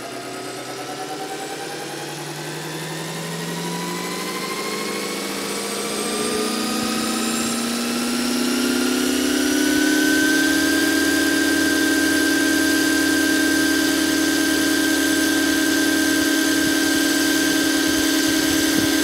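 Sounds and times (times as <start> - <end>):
model helicopter rotors whining: 0.0 - 19.0.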